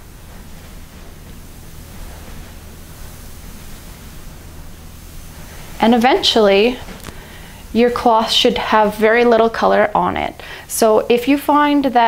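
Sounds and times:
cloth scrubbing carpet: 0:00.0 - 0:11.9.

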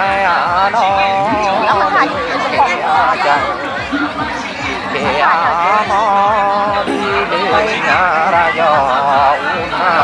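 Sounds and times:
folk singing with wavering pitch: 0:00.0 - 0:10.0
people talking and chattering: 0:00.0 - 0:10.0.

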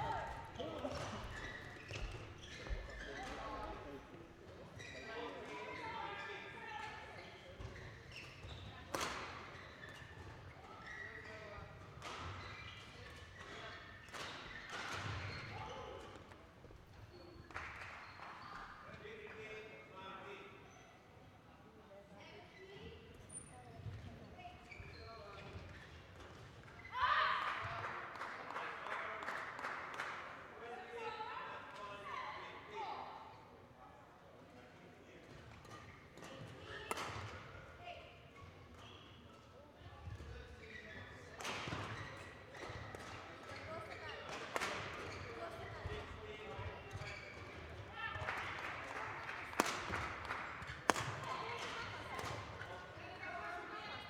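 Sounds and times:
rackets striking shuttlecocks: 0:49.6 - 0:50.0, 0:50.6 - 0:52.4.

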